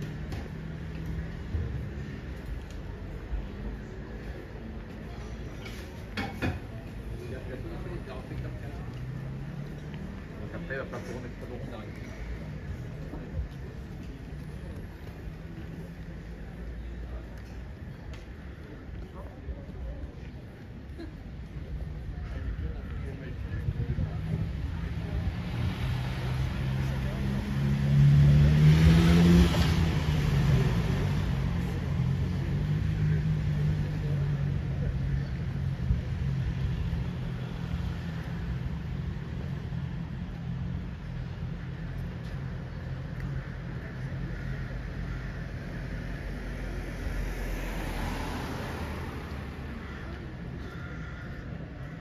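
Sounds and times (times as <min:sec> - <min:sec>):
low hum of traffic: 0:00.0 - 0:52.0
faint vehicle passing: 0:22.5 - 0:52.0
car passing close by: 0:25.3 - 0:34.0, 0:46.5 - 0:50.1.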